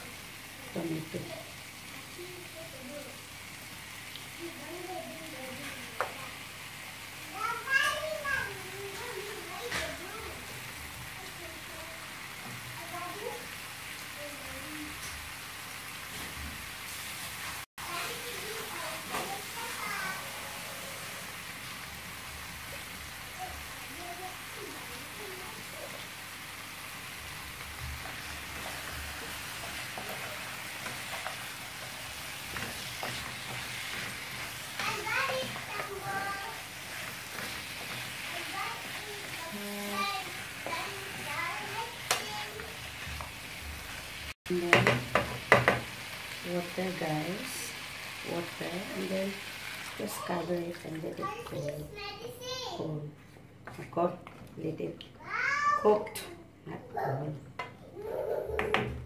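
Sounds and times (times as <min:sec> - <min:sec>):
food sizzling in a pan: 0:00.0 - 0:52.9
wooden spatula stirring: 0:27.2 - 0:44.0
voices: 0:28.2 - 0:42.9, 0:46.4 - 0:58.9.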